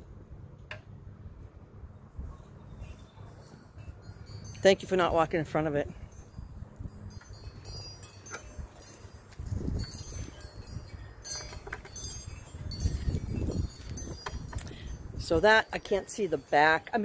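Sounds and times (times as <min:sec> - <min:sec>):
wind rumbling on microphone: 0:01.1 - 0:16.0.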